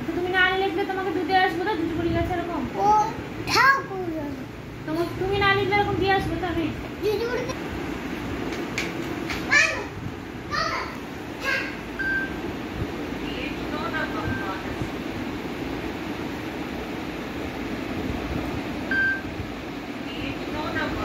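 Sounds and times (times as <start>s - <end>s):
steady low hum: 0.0s - 21.0s
child calling out: 9.5s - 11.8s.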